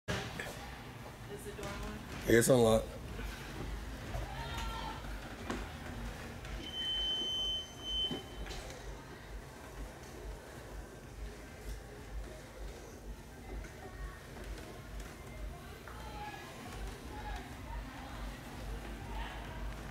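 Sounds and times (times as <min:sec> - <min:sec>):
faint voices: 0:00.1 - 0:19.9
high-pitched electronic beep: 0:06.6 - 0:08.5.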